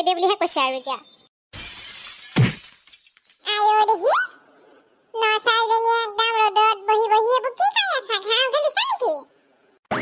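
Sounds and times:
shattering crash: 1.5 - 3.4
high-pitched cartoon voices: 3.5 - 4.5.

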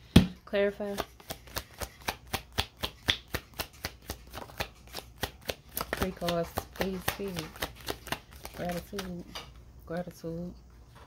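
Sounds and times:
cards being shuffled: 0.8 - 9.3.

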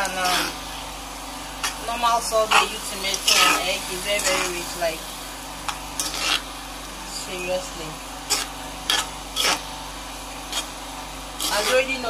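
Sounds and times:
spoon scraping frying pan: 2.4 - 4.6, 5.6 - 6.5, 8.2 - 9.8, 10.4 - 12.0.

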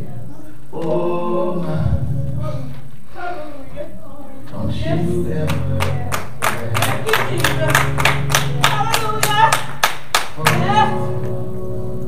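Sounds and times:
voices: 0.0 - 9.8, 10.4 - 12.0
music with held low chord: 4.5 - 9.6, 10.4 - 12.0
hands clapping steady beat: 5.4 - 11.4.

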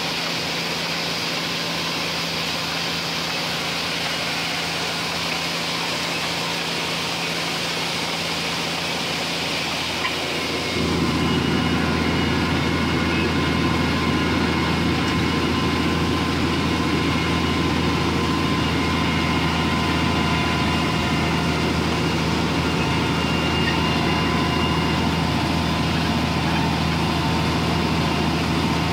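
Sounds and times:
tractor diesel engine droning: 0.0 - 28.9.

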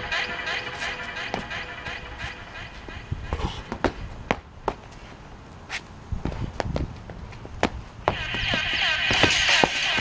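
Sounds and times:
sneakers stepping on concrete: 0.8 - 1.6, 2.2 - 10.0.

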